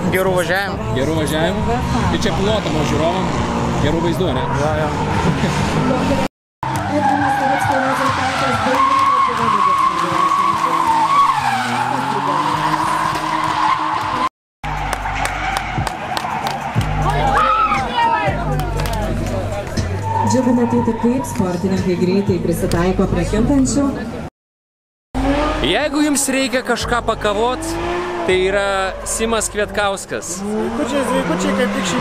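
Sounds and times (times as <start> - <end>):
tyres skidding: 0.0 - 24.2, 25.2 - 32.0
car engine whining at high revs: 25.2 - 26.2, 27.1 - 32.0.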